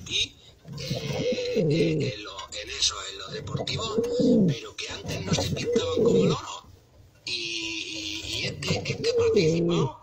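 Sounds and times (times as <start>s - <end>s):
pigeon cooing: 0.7s - 2.2s, 3.4s - 6.5s, 8.2s - 10.0s.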